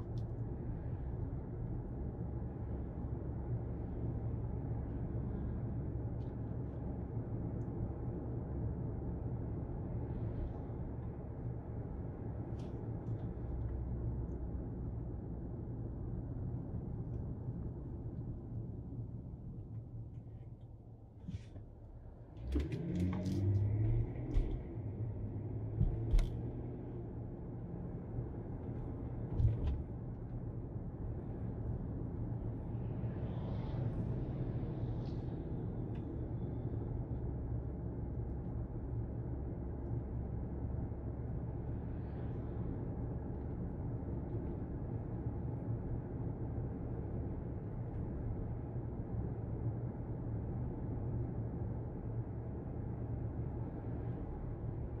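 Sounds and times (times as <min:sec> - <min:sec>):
car engine and tyres rumble: 0:00.0 - 0:55.0.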